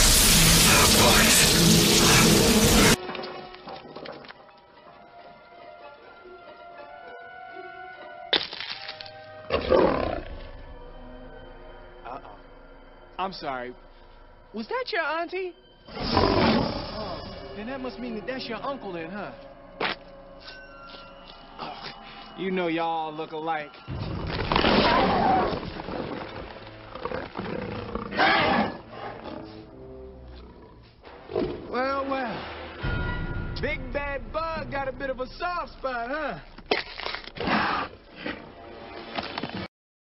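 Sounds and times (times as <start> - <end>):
orchestral score: 0.0 - 36.5
creature roaring: 9.5 - 10.3, 24.6 - 25.8, 27.0 - 29.6.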